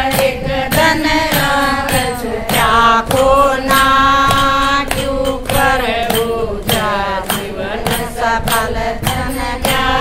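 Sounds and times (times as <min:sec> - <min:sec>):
women singing devotional chant: 0:00.0 - 0:10.0
hands clapping in time: 0:00.1 - 0:10.0.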